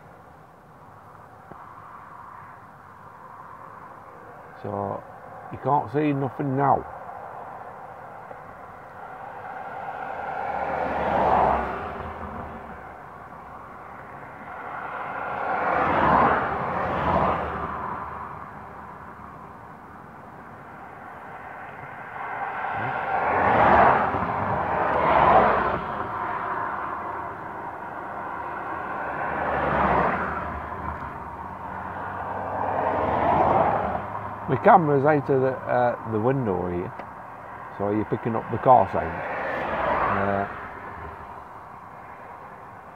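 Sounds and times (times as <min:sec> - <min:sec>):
cars passing on road: 0:00.0 - 0:42.9.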